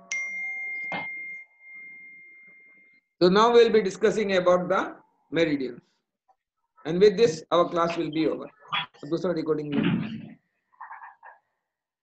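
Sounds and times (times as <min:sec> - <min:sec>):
high chime tone: 0:00.0 - 0:03.2.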